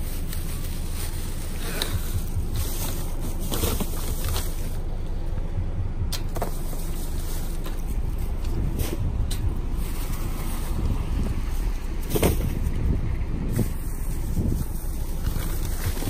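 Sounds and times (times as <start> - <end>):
plastic bags rustling: 0.0 - 5.2, 6.2 - 16.0
wind buffeting microphone: 1.7 - 16.0.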